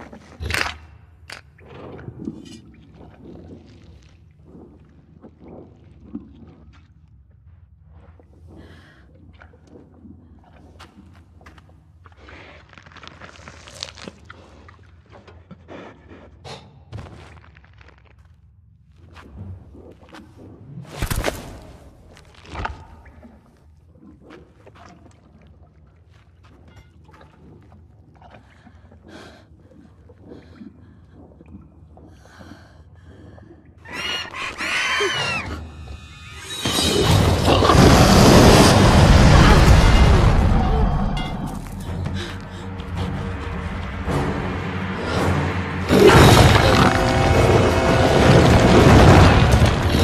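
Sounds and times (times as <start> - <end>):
dragon screeching cry: 33.9 - 36.7
low rumble: 37.5 - 50.0.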